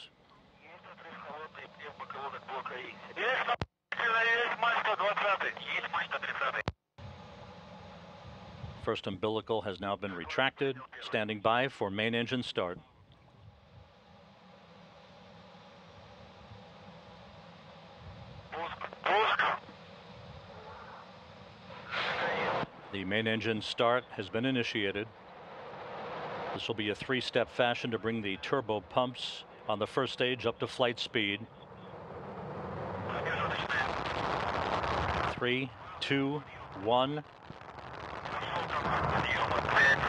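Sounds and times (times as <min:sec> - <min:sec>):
voice call over radio: 0:00.0 - 0:06.7, 0:08.8 - 0:12.8, 0:18.5 - 0:19.7, 0:21.9 - 0:25.1, 0:26.6 - 0:31.5, 0:33.1 - 0:33.9, 0:35.3 - 0:37.2, 0:38.3 - 0:40.0
faint steady low hum: 0:00.0 - 0:40.0
rocket engines rushing: 0:13.3 - 0:40.0
burst of rushing noise: 0:21.7 - 0:22.7, 0:25.1 - 0:26.7, 0:31.9 - 0:35.4.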